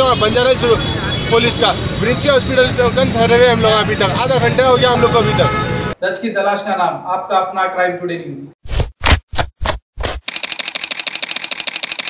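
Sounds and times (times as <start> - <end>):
rapid sharp mechanical clicks: 10.0 - 12.0.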